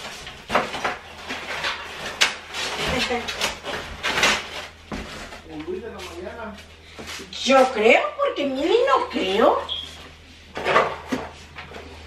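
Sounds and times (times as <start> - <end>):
rubbish and cardboard rustling: 0.0 - 7.8.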